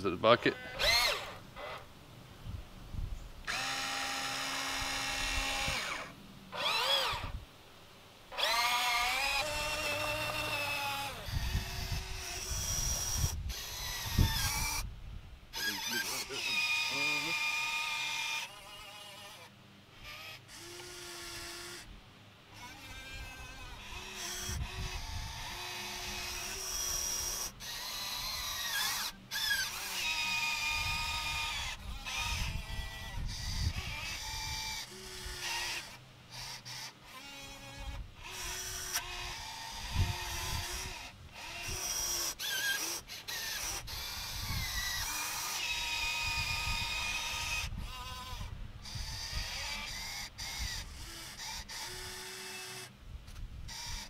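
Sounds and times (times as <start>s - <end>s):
electric motors whining: 0.0s - 1.9s, 3.4s - 7.4s, 8.3s - 14.9s, 15.5s - 21.9s, 22.5s - 54.0s.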